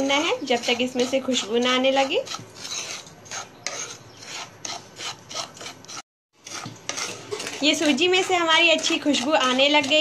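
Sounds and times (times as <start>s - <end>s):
wooden spatula scraping pan: 0.0s - 10.0s.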